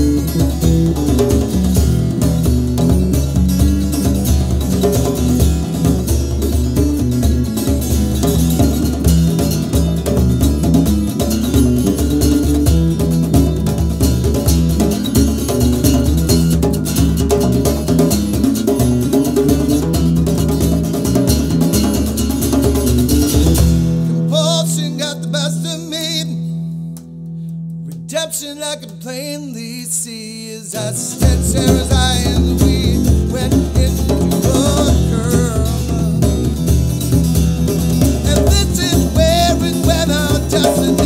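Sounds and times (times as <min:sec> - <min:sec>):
hand drum: 0:00.0 - 0:24.3, 0:31.1 - 0:41.0
electric bass guitar: 0:00.0 - 0:41.0
strummed acoustic guitar: 0:00.0 - 0:41.0.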